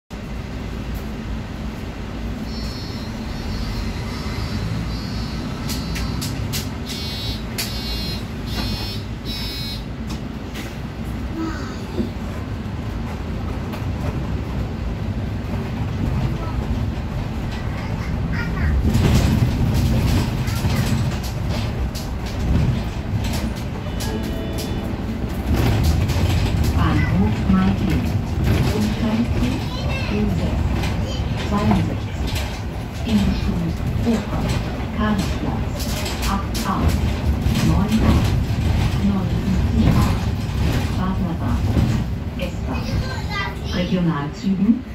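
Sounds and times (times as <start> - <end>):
bus engine and road noise: 0.1 - 44.9
short electronic beeps: 2.5 - 6.2, 6.9 - 9.9.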